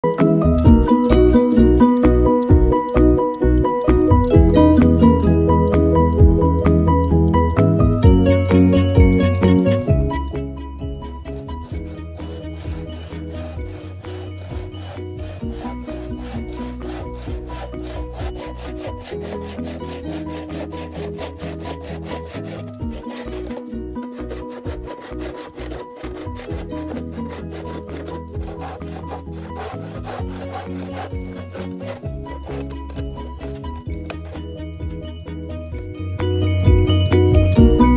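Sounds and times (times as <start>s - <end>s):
background music: 0.0s - 37.9s
hand saw cutting bamboo: 9.6s - 35.2s.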